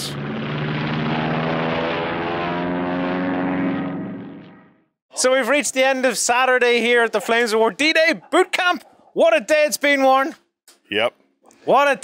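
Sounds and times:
propeller aircraft engines droning: 0.0 - 8.8.

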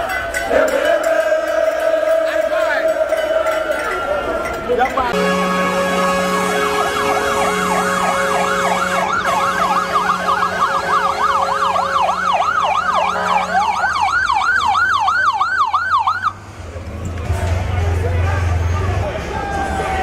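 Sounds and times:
police sirens yelping: 0.0 - 16.4.

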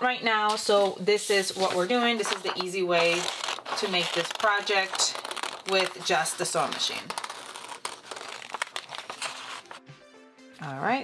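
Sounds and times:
paper rustling: 0.6 - 9.8
scissors snipping paper: 1.6 - 9.8.

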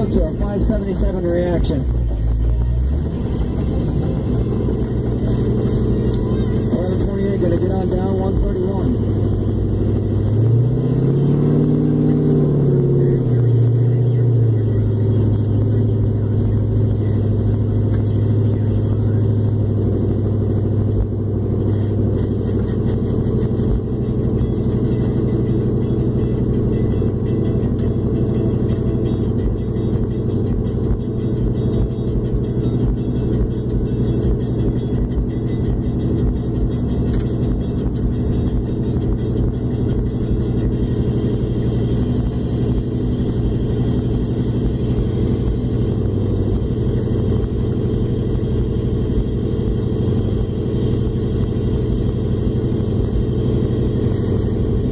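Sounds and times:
car engine heard from inside cabin: 0.0 - 54.9.

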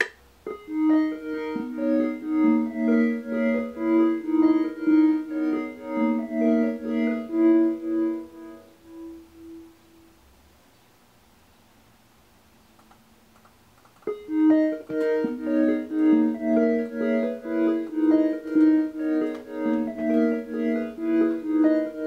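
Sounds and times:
synthesizer pure tone: 0.5 - 10.3, 14.1 - 22.0.

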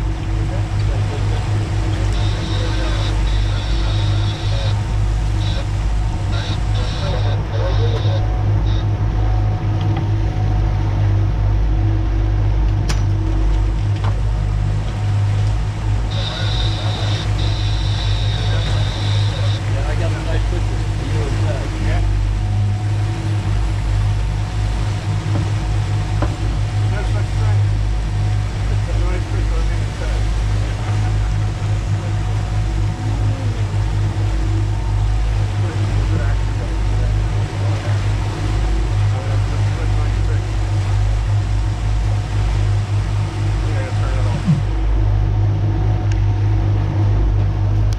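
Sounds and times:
outboard motors droning: 0.0 - 47.9
water rushing from wake: 0.0 - 47.9
high steady tone: 1.2 - 9.0, 16.0 - 20.2, 44.0 - 45.0.

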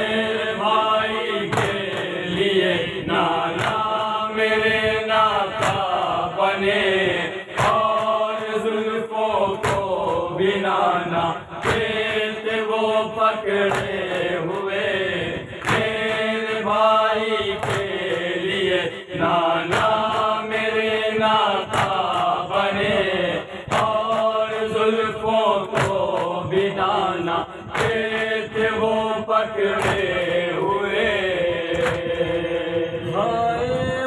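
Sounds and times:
men chanting a lament: 0.0 - 34.0
hands slapping chests: 1.5 - 2.4, 3.5 - 4.1, 5.6 - 6.1, 7.5 - 8.3, 9.5 - 10.2, 11.6 - 12.8, 13.5 - 14.9, 15.6 - 16.0, 16.7 - 18.2, 19.7 - 20.8, 21.6 - 23.0, 23.7 - 28.9, 29.6 - 30.3, 31.7 - 32.3.

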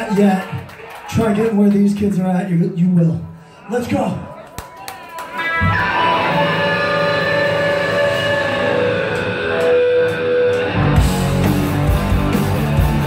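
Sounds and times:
electric guitars ringing: 5.4 - 13.0
live rock band playing: 5.4 - 13.0.

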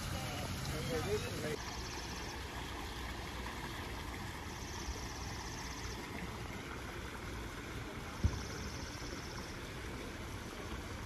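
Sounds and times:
fountain splashing into pond: 0.0 - 11.0.

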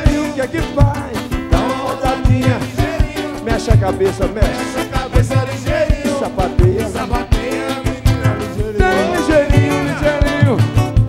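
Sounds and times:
hand drums beating: 0.0 - 11.0
strummed acoustic guitars: 0.0 - 11.0
voices singing wordless lines: 0.0 - 11.0.

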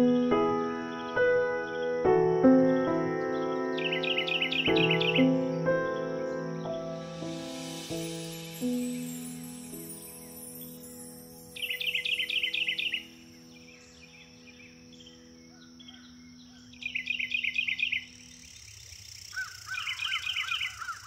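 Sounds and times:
soft piano notes: 0.0 - 16.8
songbird chirping: 0.0 - 21.0.

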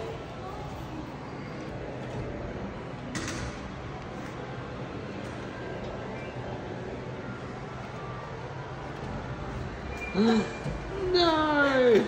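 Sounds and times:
low hum of store ambience: 0.0 - 12.0.

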